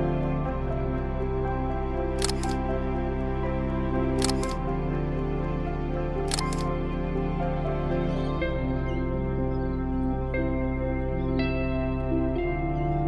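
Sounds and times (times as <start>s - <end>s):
soft background music: 0.0s - 13.0s
camera shutter double click: 2.2s - 2.6s, 4.2s - 4.6s, 6.3s - 6.7s.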